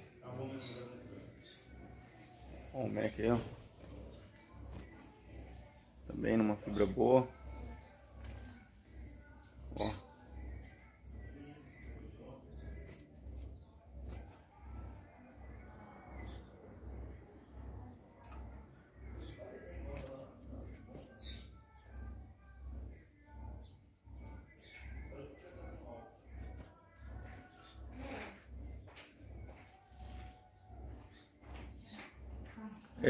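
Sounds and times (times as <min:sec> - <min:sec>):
low repeating throb: 0:00.0 - 0:33.0.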